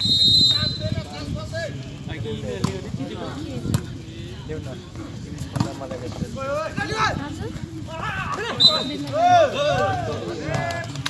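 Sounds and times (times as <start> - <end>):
referee's whistle blast: 0.0 - 1.0, 8.6 - 9.0
spectators' voices: 0.4 - 11.0.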